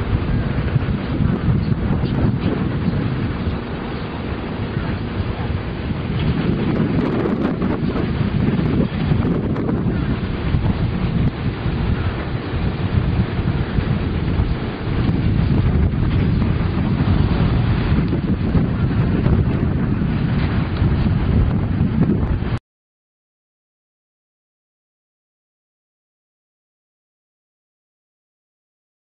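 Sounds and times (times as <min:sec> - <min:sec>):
wind buffeting microphone: 0:00.0 - 0:22.6.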